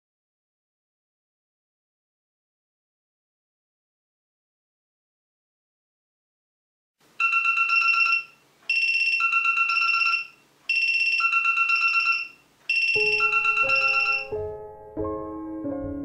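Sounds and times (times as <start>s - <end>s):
marimba-like phone ringtone: 7.2s - 14.6s
piano music: 13.0s - 16.0s.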